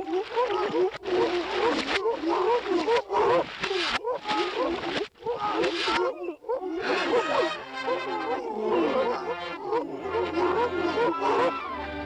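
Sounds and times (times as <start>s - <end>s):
cartoon seals barking: 0.2s - 11.8s.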